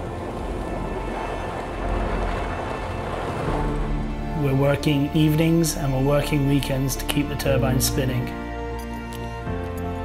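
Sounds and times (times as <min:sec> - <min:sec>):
truck engine and tyres rumbling: 0:00.0 - 0:07.6
soft background music: 0:00.0 - 0:10.0.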